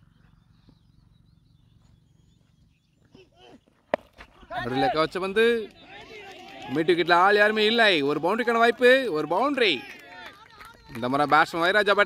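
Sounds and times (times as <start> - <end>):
cricket bat striking ball: 3.9 - 4.5.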